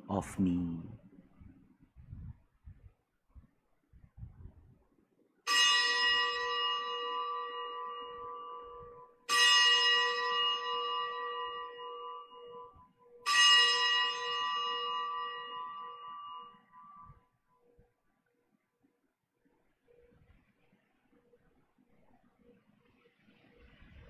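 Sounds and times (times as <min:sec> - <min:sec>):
altar bell ringing: 0:05.5 - 0:17.3.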